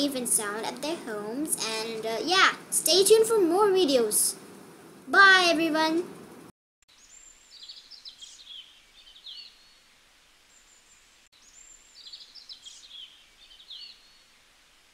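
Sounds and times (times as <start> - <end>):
birds chirping and trilling: 6.9 - 9.9, 10.6 - 14.4.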